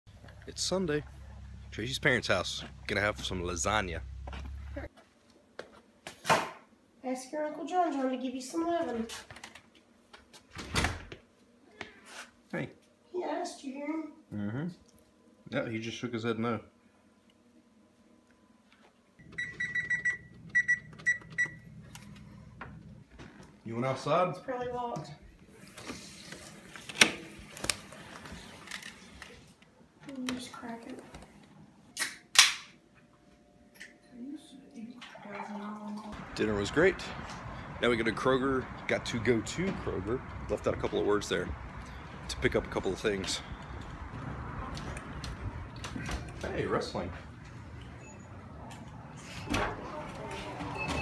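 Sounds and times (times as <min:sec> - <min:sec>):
low steady hum: 0:00.1 - 0:04.9
low steady rumble: 0:00.1 - 0:04.9
footsteps: 0:00.1 - 0:06.2.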